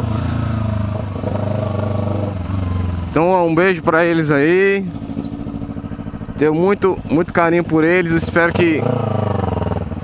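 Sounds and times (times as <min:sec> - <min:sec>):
motorcycle engine at low revs: 0:00.0 - 0:10.0.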